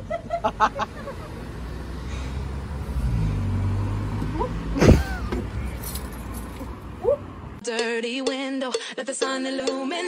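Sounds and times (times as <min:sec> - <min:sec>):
outdoor background noise: 0:00.0 - 0:07.7.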